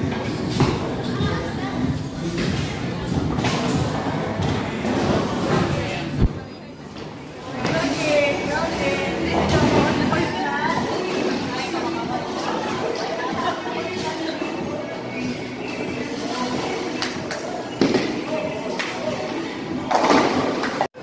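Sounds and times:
people talking: 0.6s - 19.8s.

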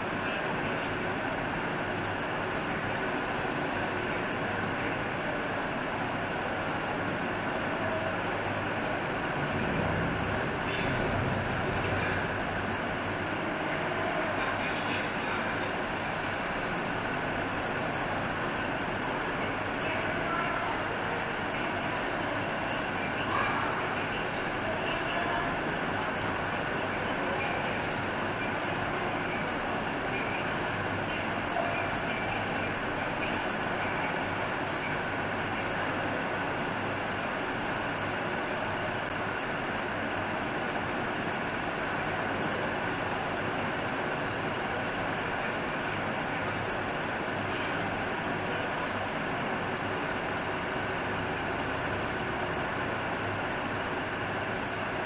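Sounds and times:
faint voices: 0.0s - 55.0s
steady background noise: 0.0s - 55.0s.

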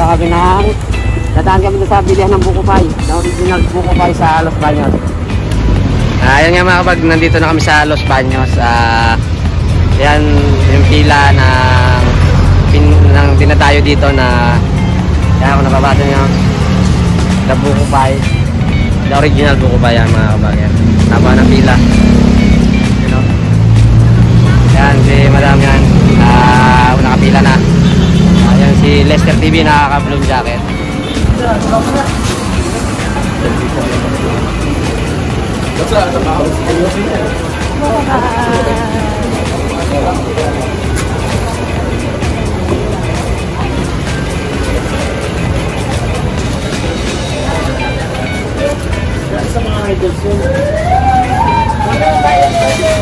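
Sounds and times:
indistinct voices: 0.0s - 53.0s
traffic rumble: 0.0s - 53.0s
vehicle engine humming: 0.0s - 53.0s
people talking: 1.4s - 5.0s, 19.1s - 22.2s, 22.8s - 23.3s, 24.7s - 27.7s, 28.3s - 53.0s.

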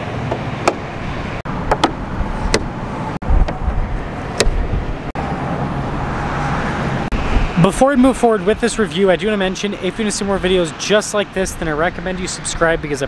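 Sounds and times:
outdoor background noise: 0.0s - 13.0s.

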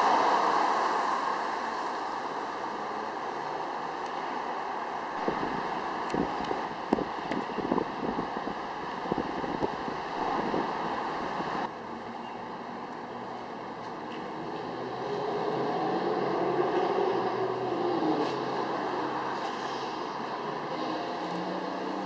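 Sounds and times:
rushing noise: 0.0s - 11.8s.

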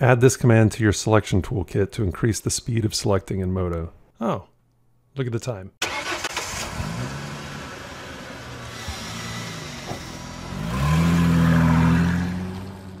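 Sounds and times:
car engine idling and revving: 5.9s - 13.0s.

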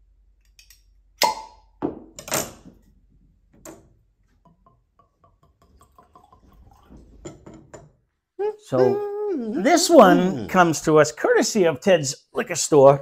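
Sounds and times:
cork squeak and pop: 1.2s - 1.6s
liquid glugging into glass: 5.3s - 7.5s.

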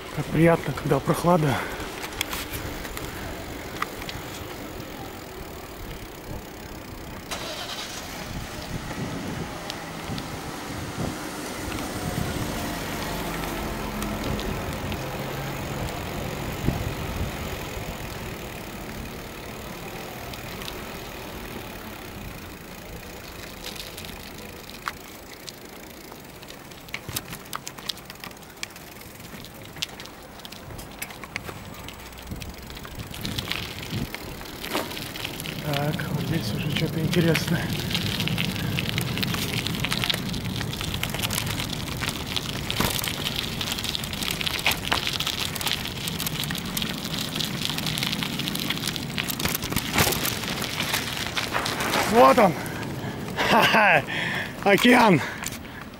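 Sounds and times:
clicks and rattles on gravel: 0.0s - 10.4s, 11.6s - 55.9s
bicycle tyre noise: 0.0s - 55.9s
wind: 0.0s - 55.9s.

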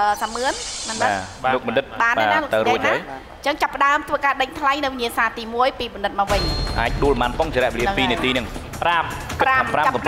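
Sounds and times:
woman talking: 0.0s - 1.2s, 2.0s - 6.4s
steady high hiss: 0.0s - 2.7s.

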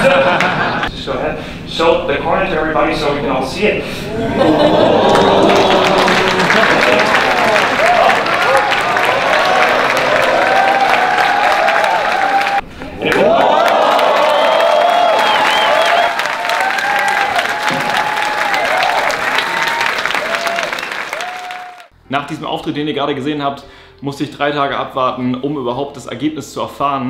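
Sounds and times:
whoops and shouts: 4.1s - 21.9s
audience applauding: 4.6s - 21.9s.

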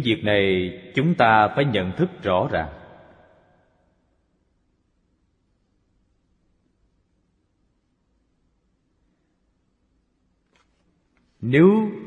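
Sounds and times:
man's voice: 0.0s - 2.8s, 11.4s - 12.0s.

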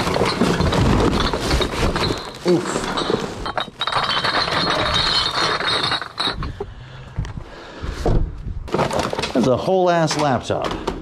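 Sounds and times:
plastic bags rustling: 0.0s - 6.6s
junk clinking and knocking: 0.0s - 6.8s.

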